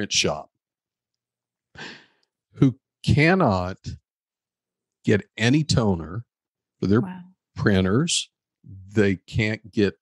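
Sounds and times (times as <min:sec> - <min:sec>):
man speaking: 0:00.0 - 0:00.5, 0:02.6 - 0:04.0, 0:05.1 - 0:10.0
man breathing in: 0:01.8 - 0:02.3.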